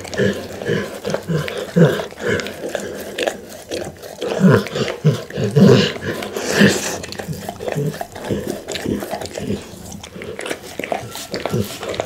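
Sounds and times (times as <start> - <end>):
dog grunting: 0.0 - 12.0
dog licking a glass bowl: 0.0 - 12.0.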